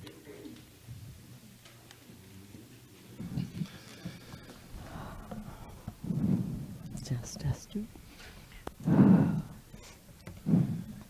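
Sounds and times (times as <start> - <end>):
person whispering: 6.9 - 7.9.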